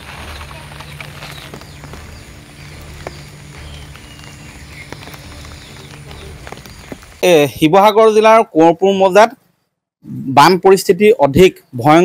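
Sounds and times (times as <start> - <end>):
steady low hum: 0.0 - 7.2.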